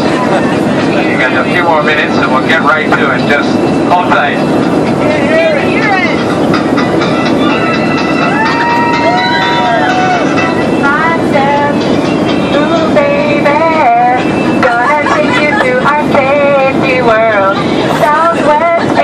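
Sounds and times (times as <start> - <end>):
airliner cabin roar: 0.0 - 19.0
passengers talking and calling out: 0.0 - 19.0.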